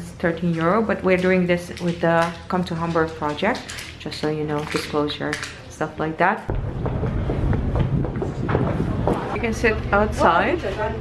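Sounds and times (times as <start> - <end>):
footsteps on boarding ramp: 6.5 - 9.8
low rumble: 6.5 - 11.0.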